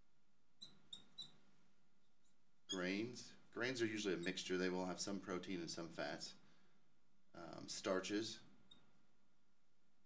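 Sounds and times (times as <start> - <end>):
marker squeaking on glass: 0.6 - 1.4, 2.0 - 3.0, 4.0 - 4.4, 8.7 - 8.9.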